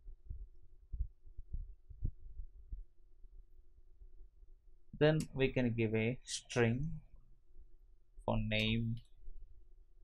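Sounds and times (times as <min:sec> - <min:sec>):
muffled low thumps: 0:00.0 - 0:03.0
faint steady hum: 0:00.0 - 0:10.0.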